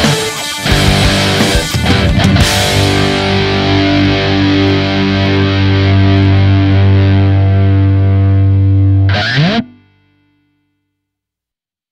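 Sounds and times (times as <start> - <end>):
distorted electric guitar chord: 0.0 - 10.7.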